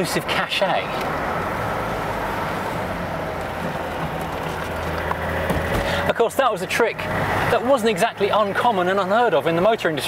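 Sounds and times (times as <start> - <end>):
car engine cruising drone: 0.0 - 9.7
road and wind noise: 0.0 - 10.0.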